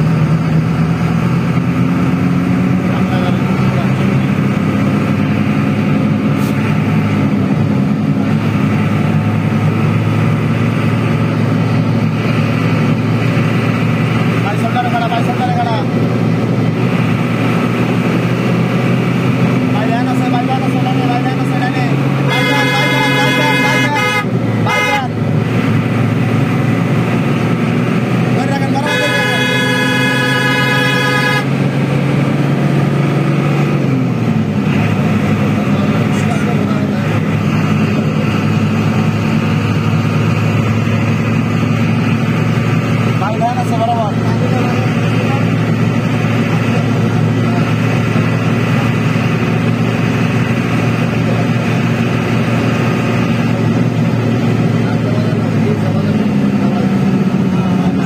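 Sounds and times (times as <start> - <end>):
bus engine droning: 0.0 - 58.0
horn blasts: 22.3 - 25.2, 28.7 - 31.6.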